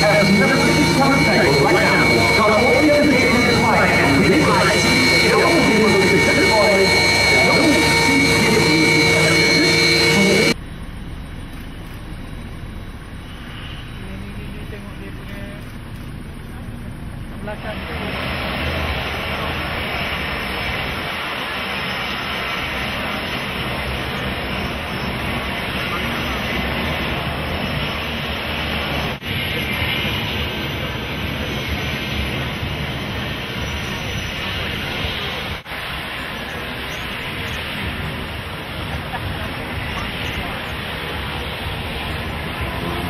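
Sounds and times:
jet engines whining: 0.0s - 43.0s.

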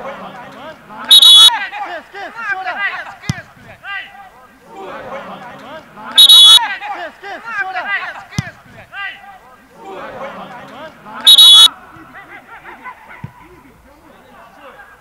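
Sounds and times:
players shouting: 0.0s - 15.0s
referee's whistle blasts: 1.1s - 1.6s, 6.2s - 6.6s, 11.3s - 11.7s.

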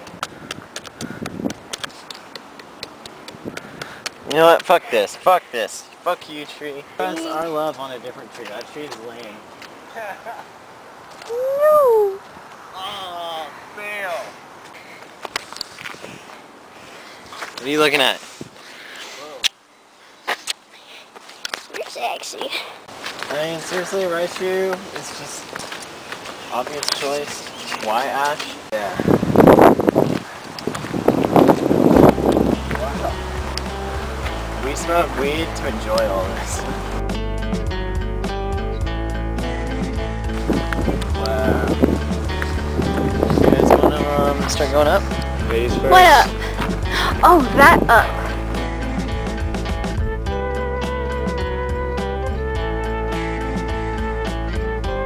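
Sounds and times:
wind buffeting microphone: 0.0s - 4.5s, 28.6s - 37.0s, 40.0s - 50.4s.

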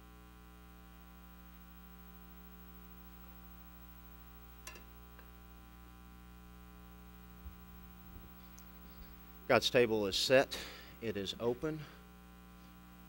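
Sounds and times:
electrical mains hum: 0.0s - 13.0s.

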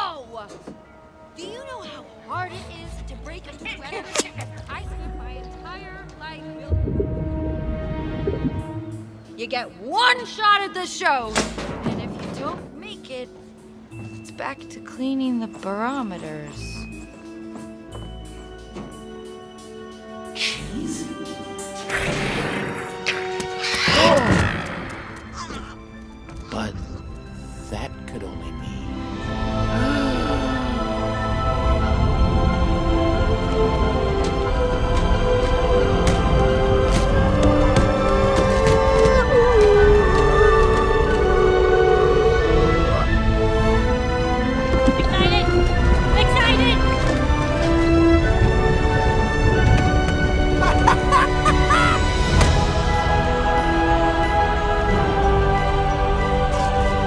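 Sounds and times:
film score music: 0.0s - 57.0s
cartoon man giggling and squealing: 50.6s - 52.1s.

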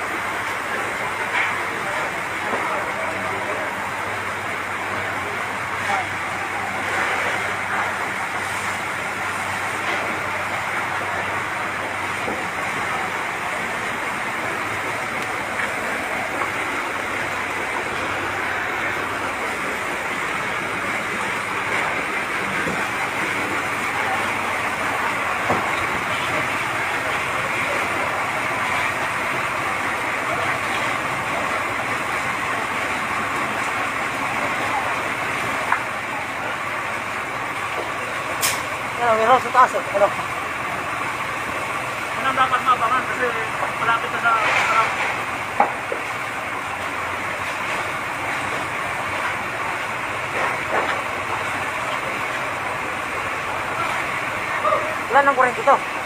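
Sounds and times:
truck engines and pumps running: 0.0s - 56.0s.

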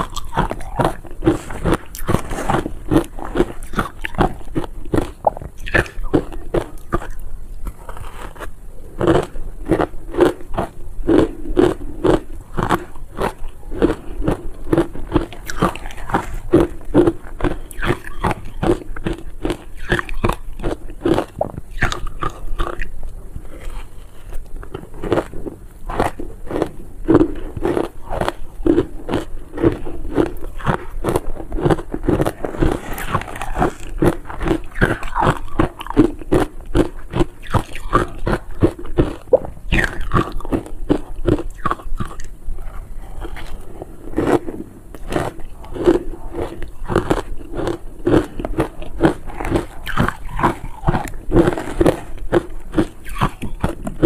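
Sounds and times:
ice crunching being chewed: 0.0s - 54.0s.

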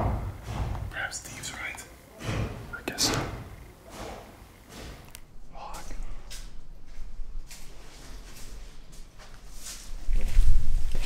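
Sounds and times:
footsteps on hard floor: 0.0s - 1.0s, 6.3s - 11.0s
low thumps on hard floor: 0.0s - 1.0s
whispered speech: 0.9s - 2.0s, 2.7s - 3.4s, 5.4s - 6.3s.

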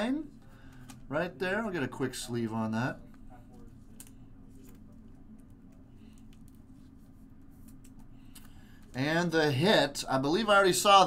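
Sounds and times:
steady low hum: 0.0s - 11.0s
light taps and rustles of cards: 3.0s - 9.0s.

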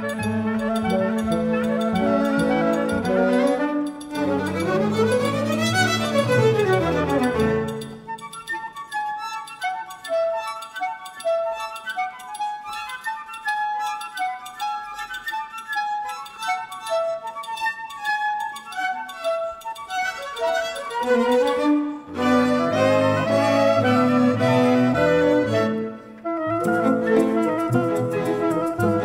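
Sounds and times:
chamber orchestra playing: 0.0s - 29.0s.

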